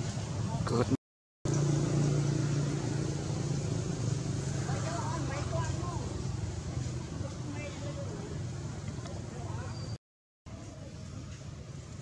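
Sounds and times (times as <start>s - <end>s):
low motor hum: 1.5s - 7.5s.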